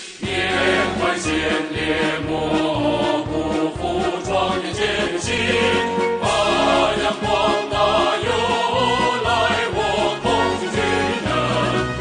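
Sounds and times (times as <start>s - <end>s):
group singing with accompaniment: 0.0s - 12.0s.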